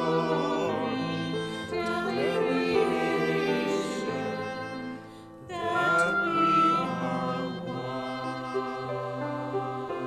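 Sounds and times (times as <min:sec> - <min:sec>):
church choir singing a hymn: 0:00.0 - 0:10.0.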